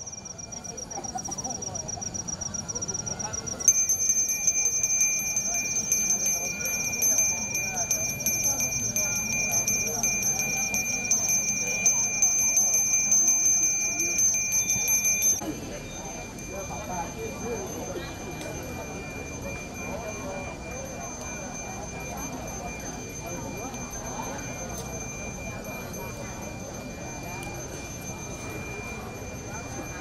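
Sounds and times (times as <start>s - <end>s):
brass hand bell ringing: 0.0s - 15.4s.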